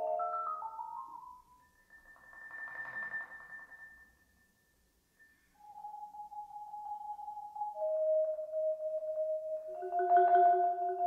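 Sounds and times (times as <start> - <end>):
marimba playing: 8.9 - 11.0.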